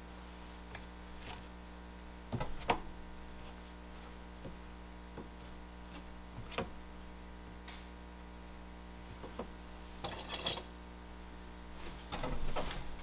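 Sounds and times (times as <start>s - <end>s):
steady low hum: 0.0s - 13.0s
tools scraping and rattling: 10.0s - 10.7s.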